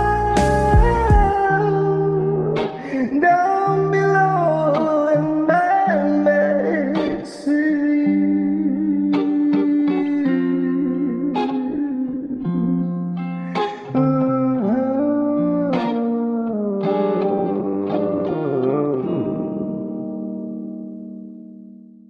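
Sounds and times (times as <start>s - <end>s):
guitar strumming chords: 0.0s - 22.0s.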